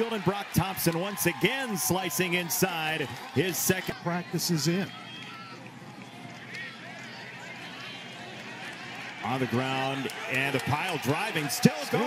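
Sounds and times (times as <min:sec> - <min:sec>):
murmur of spectators: 0:00.0 - 0:12.0
distant players shouting: 0:09.2 - 0:12.0.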